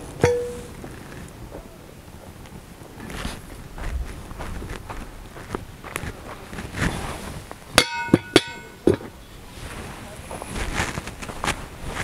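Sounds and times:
metal pot lid clanking: 0:00.2 - 0:00.7, 0:07.8 - 0:09.0
footsteps on dry dirt: 0:02.2 - 0:07.7, 0:09.7 - 0:12.0.

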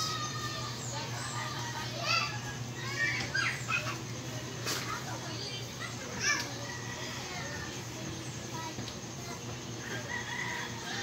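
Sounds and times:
children calling out: 0:00.0 - 0:11.0.

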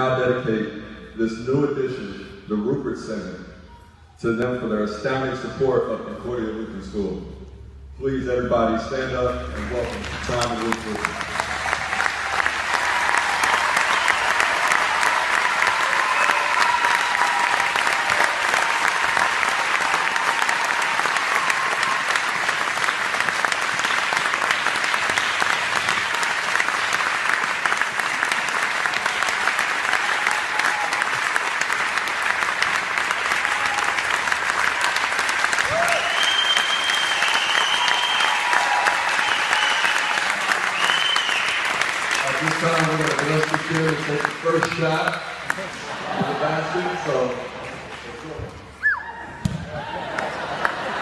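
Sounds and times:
audience clapping: 0:09.4 - 0:51.0.

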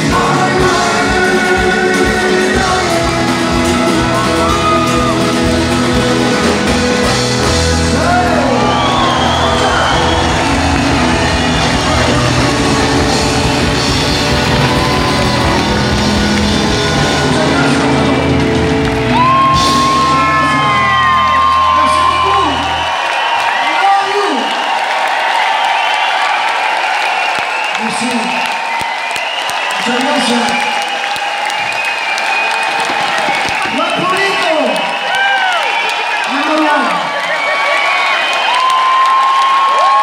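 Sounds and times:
rumba flamenca band playing: 0:00.0 - 0:22.9
crowd whooping and cheering: 0:00.8 - 0:40.0.

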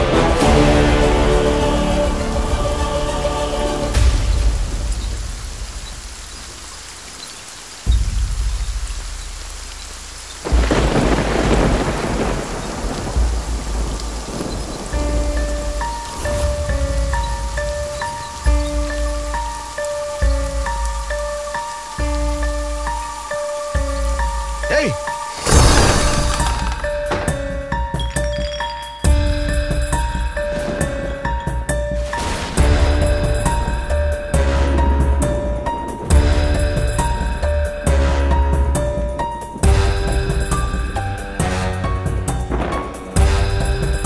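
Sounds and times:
music: 0:00.0 - 0:06.8, 0:07.8 - 0:44.0
heavy rain: 0:00.0 - 0:44.0
thunder rolling: 0:10.4 - 0:20.8, 0:25.1 - 0:44.0.

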